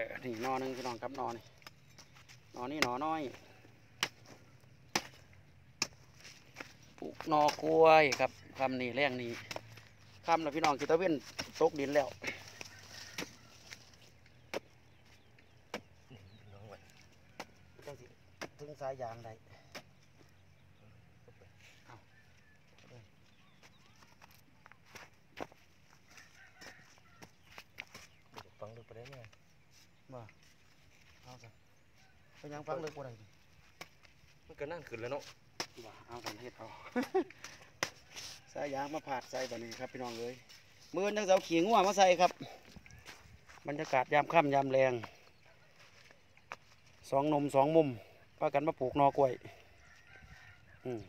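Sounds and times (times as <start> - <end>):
hoe chopping into dry soil: 0.4 - 13.6, 14.3 - 16.0.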